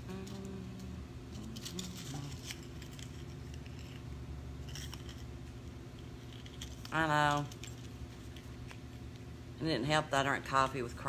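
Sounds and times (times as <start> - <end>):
person humming: 0.0 - 2.8
low hum: 0.0 - 11.0.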